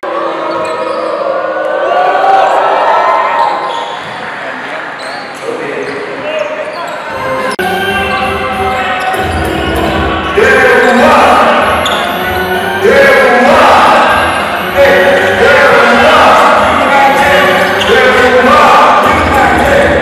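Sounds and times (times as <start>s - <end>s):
crowd voices echoing: 0.0s - 20.0s.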